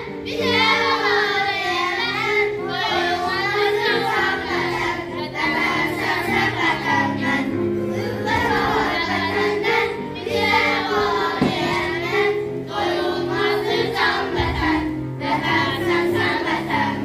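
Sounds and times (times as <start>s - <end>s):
children singing in unison: 0.0s - 17.0s
instrumental accompaniment: 0.0s - 17.0s.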